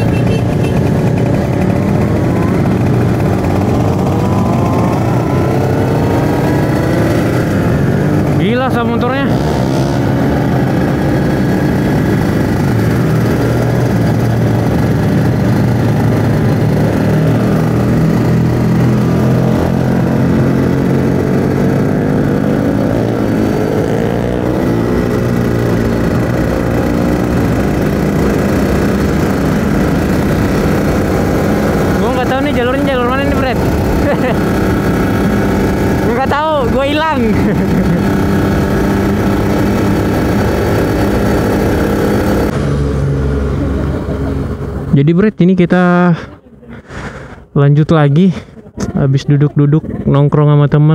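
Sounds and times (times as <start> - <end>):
two-stroke motorcycle engine running: 0.0 - 42.8
warbling tone: 0.8 - 9.0.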